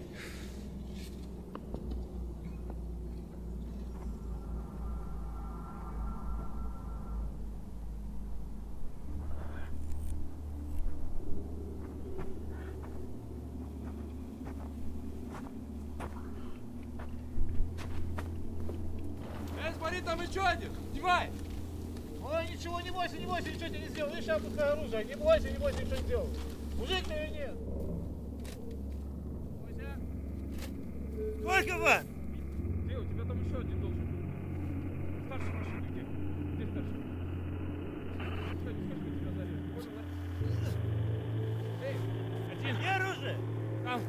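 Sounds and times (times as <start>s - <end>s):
low rumble: 0.0s - 44.0s
twigs and leaves rustling and snapping: 11.8s - 29.5s, 30.2s - 31.2s.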